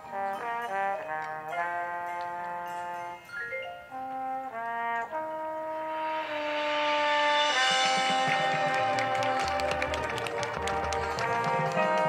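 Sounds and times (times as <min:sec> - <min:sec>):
brass holding chords: 0:00.0 - 0:12.0
sharp percussion strikes: 0:06.0 - 0:12.0.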